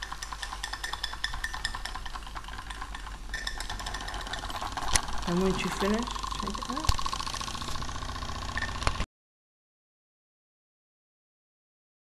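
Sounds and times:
model steam engine running: 0:00.0 - 0:09.0.

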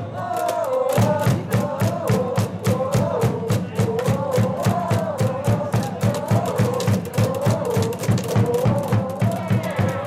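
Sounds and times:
crowd chanting in unison: 0:00.0 - 0:10.0
hand claps: 0:00.2 - 0:02.2, 0:05.7 - 0:10.0.

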